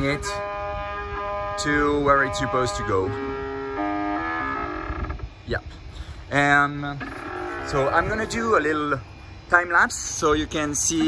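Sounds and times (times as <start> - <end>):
stepper motors whining: 6.6 - 11.0.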